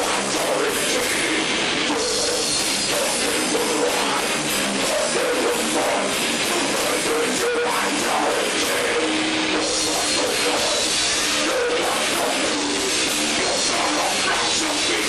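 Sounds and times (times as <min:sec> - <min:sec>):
drums: 0:00.0 - 0:15.0
electric guitar: 0:00.0 - 0:15.0
person singing into a microphone: 0:00.0 - 0:15.0.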